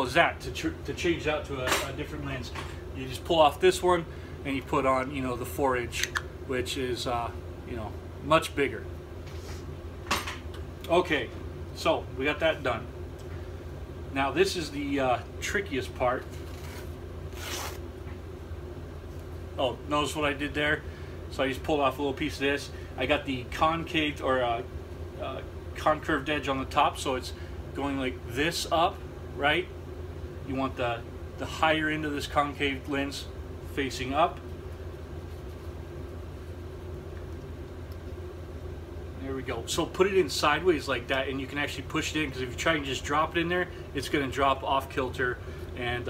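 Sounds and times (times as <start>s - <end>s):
steady low hum: 0.0s - 46.0s
paper towel ripping: 16.4s - 17.8s.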